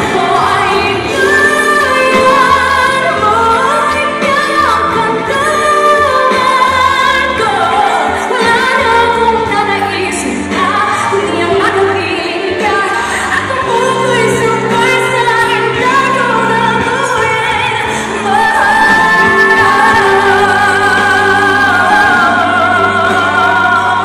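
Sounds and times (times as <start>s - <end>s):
instrumental backing with bass: 0.0s - 24.0s
woman singing into a microphone: 0.0s - 24.0s.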